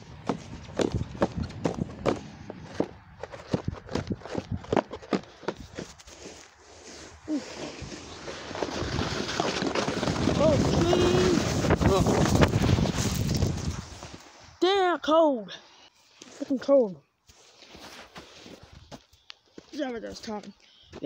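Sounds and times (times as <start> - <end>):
wind noise on microphone: 0.0 - 5.0, 7.2 - 14.2.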